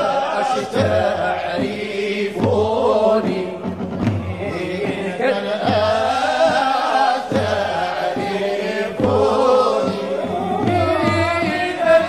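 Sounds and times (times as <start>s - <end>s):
low drum beat: 0.0s - 12.0s
voices chanting a melody: 0.0s - 12.0s.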